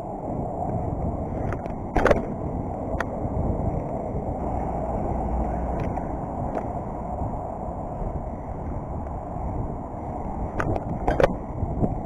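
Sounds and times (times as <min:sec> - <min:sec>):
bike rolling over pavement: 0:00.0 - 0:12.0
wind on microphone: 0:00.0 - 0:12.0
bike rattling thump: 0:01.5 - 0:02.4.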